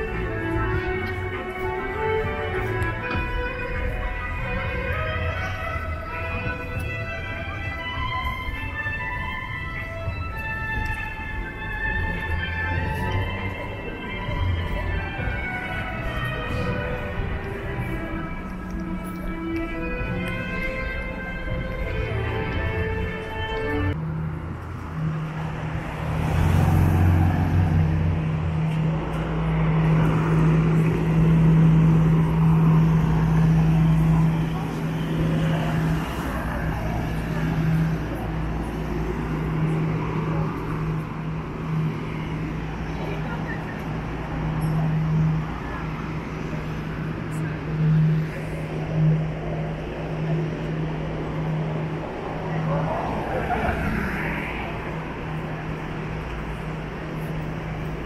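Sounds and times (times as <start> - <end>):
car traffic passing: 0.0 - 58.0
passersby talking: 0.0 - 58.0.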